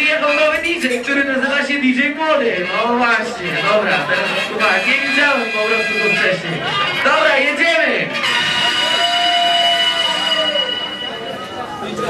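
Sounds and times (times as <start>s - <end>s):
loud horn-like tone: 2.6s - 6.4s, 8.1s - 11.6s.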